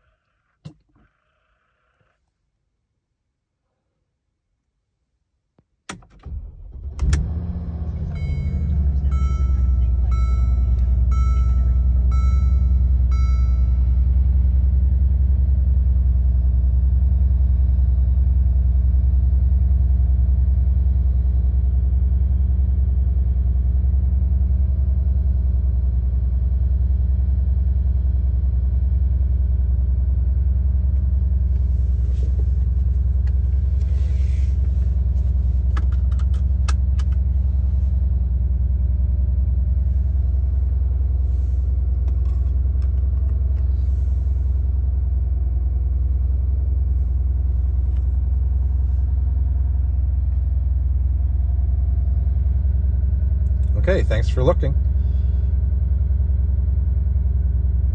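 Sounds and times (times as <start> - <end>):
car engine idling: 6.2 - 57.9
short beeps: 8.1 - 14.1.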